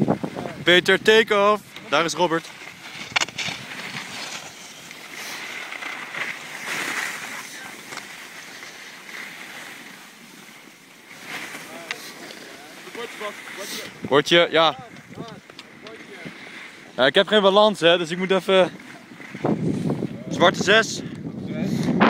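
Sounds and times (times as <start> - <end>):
wind rushing over microphone: 0.0 - 1.7, 13.9 - 15.4, 19.1 - 22.0
skis scraping over snow: 0.0 - 21.0.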